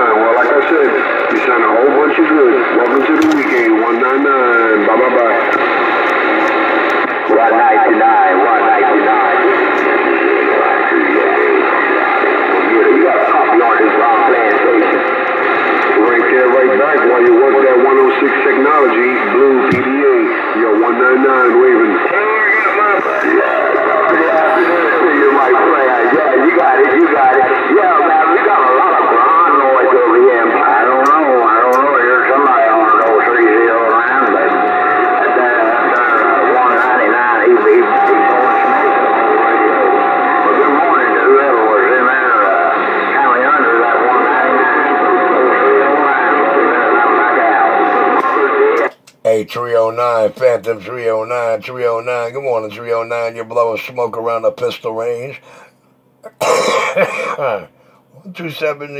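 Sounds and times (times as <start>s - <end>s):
radio static: 0.0s - 55.7s
tinny radio voices: 0.0s - 58.9s.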